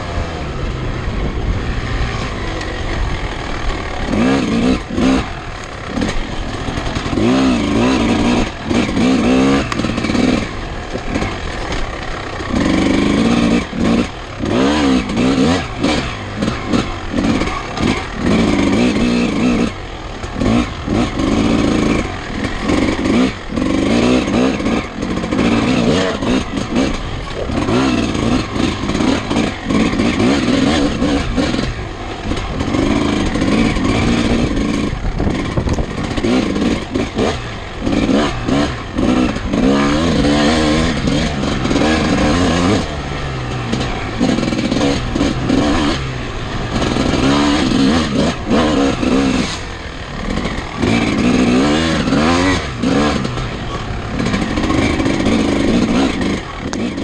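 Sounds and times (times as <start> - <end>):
dirt bike engine revving: 0.0 - 57.0
bike knocks and rattles: 4.0 - 57.0.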